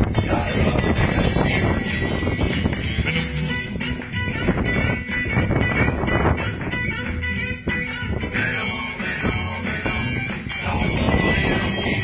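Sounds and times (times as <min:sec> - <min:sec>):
rock and roll dance music: 0:00.0 - 0:12.0.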